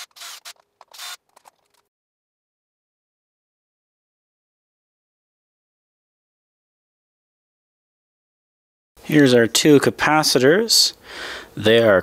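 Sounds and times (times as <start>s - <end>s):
drill scraping against metal plate: 0.0s - 1.3s.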